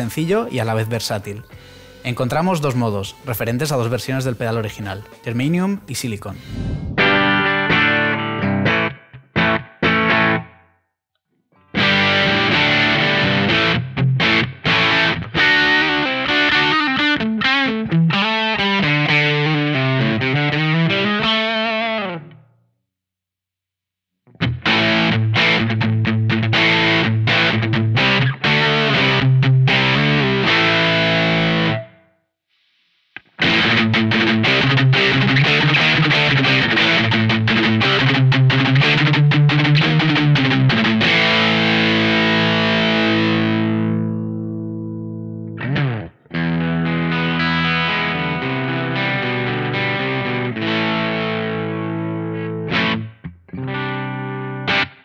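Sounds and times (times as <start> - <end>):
distorted electric guitar: 6.4 - 10.7, 11.6 - 22.4, 24.3 - 32.0, 33.2 - 55.0.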